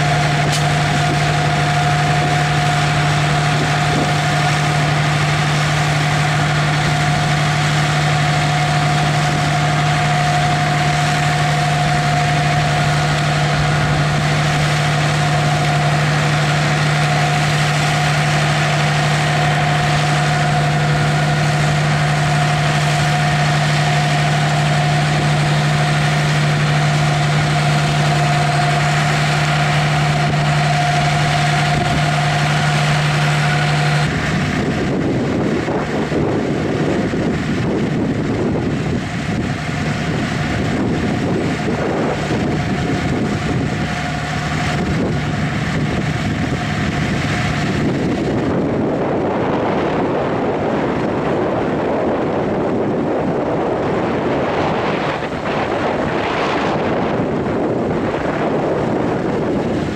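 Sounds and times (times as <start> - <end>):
steady high whine: 0.0 - 59.9
tractor engine running: 0.0 - 59.9.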